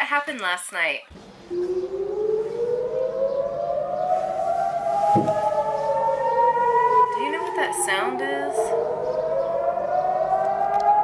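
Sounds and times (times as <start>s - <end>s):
air raid siren wailing: 1.2s - 11.0s
low knock: 5.1s - 5.5s.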